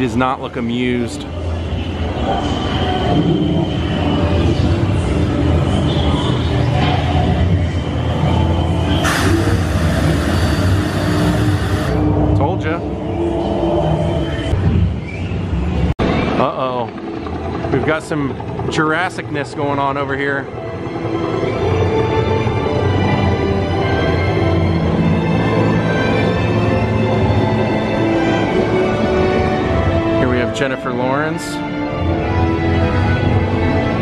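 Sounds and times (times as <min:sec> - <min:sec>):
loud low rumbling: 0:08.8 - 0:14.9.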